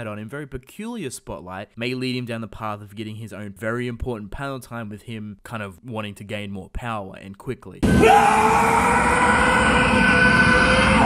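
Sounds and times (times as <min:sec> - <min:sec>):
man yelling: 0:07.8 - 0:11.0.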